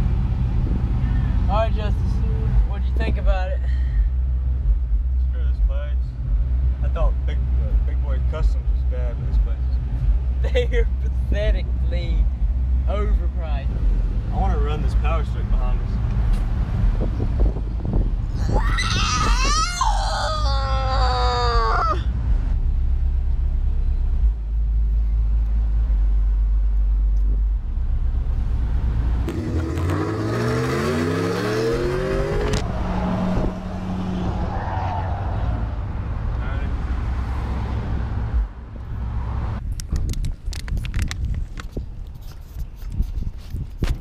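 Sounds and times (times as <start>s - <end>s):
engine and road noise: 0.0s - 44.0s.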